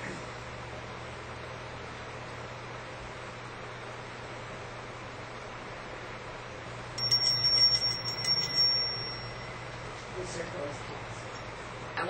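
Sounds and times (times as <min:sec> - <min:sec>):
low room hum and hiss: 0:00.0 - 0:12.0
hand bell ringing: 0:07.0 - 0:10.0.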